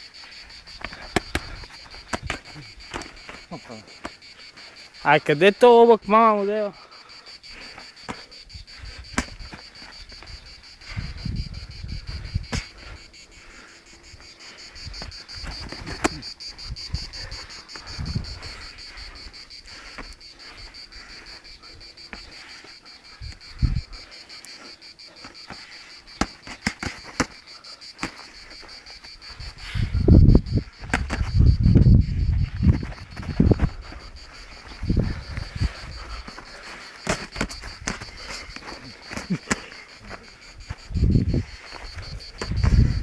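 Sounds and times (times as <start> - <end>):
insects chirring: 0.0 - 43.0.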